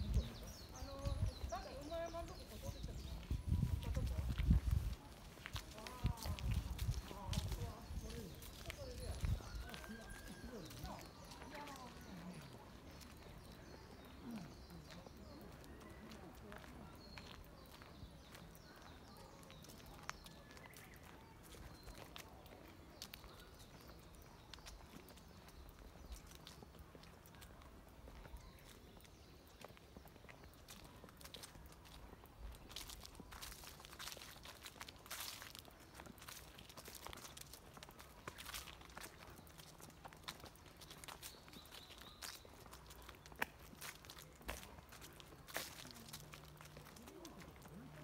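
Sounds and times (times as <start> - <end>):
wind buffeting microphone: 0.0 - 9.7
footsteps on paved path: 0.0 - 48.0
people talking quietly: 0.0 - 48.0.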